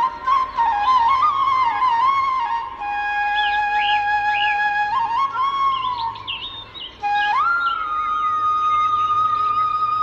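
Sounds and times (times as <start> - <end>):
bamboo flute music: 0.0 - 10.0.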